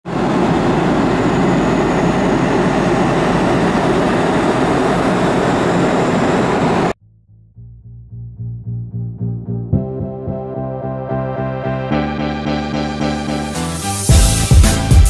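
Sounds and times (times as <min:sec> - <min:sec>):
jet airliner cabin noise: 0:00.1 - 0:07.0
music with regular pulse: 0:09.5 - 0:15.0.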